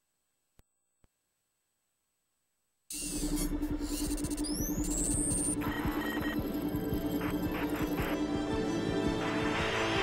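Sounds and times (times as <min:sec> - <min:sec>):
high electronic chirps: 0:02.9 - 0:08.2
pulsing low electronic hum: 0:02.9 - 0:08.2.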